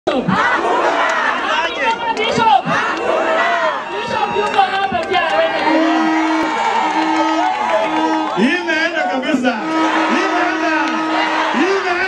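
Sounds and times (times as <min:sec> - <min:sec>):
crowd shouting: 0:00.1 - 0:12.0.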